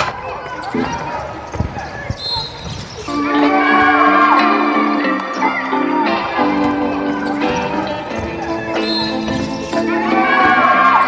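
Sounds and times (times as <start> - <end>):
basketball bouncing on a court: 0.0 - 3.1, 7.2 - 9.8
voices chattering: 0.0 - 11.0.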